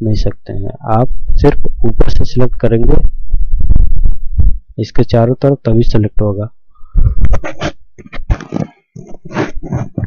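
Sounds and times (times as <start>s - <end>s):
man talking: 0.0s - 3.1s, 4.8s - 6.6s
low rumble and thumping on microphone: 1.0s - 4.8s, 6.8s - 10.0s.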